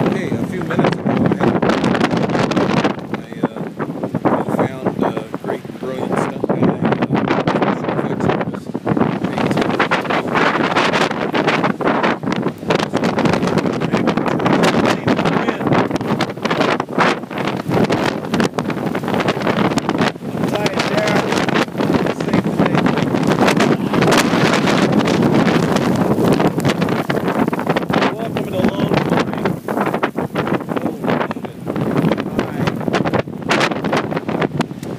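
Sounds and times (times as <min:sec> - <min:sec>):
strong wind buffeting microphone: 0:00.0 - 0:34.9.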